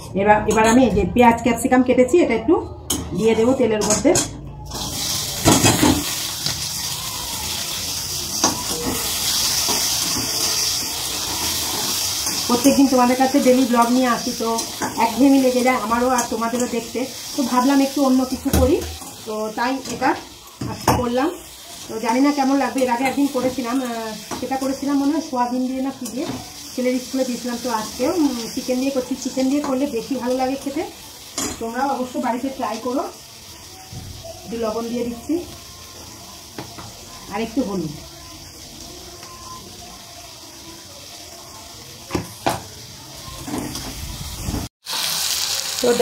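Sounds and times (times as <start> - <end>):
woman speaking: 0.1 - 4.3
food sizzling in a pan: 4.6 - 46.0.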